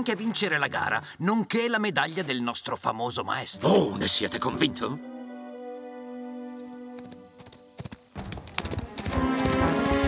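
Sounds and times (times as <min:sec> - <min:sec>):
horse hoofbeats: 0:06.7 - 0:10.0.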